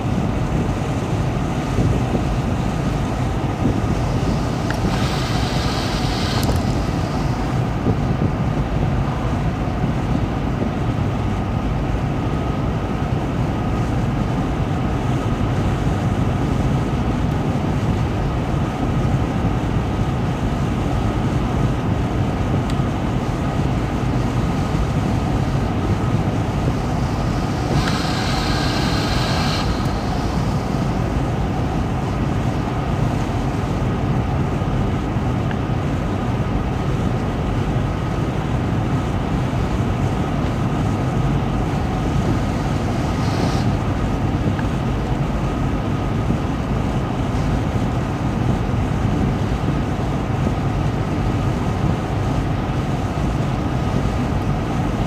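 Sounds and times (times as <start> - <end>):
wind wash: 0.0 - 55.0
higher hiss: 0.8 - 8.0, 24.0 - 33.8, 39.0 - 44.8.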